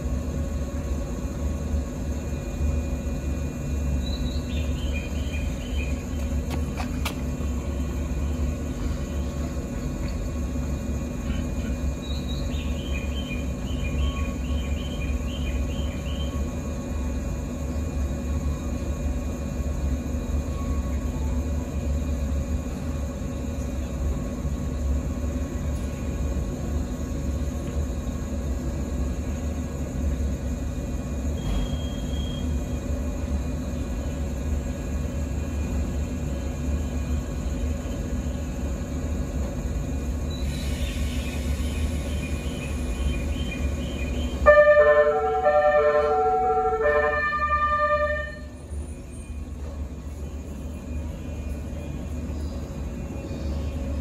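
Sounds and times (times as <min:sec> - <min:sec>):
train equipment humming: 0:00.0 - 0:54.0.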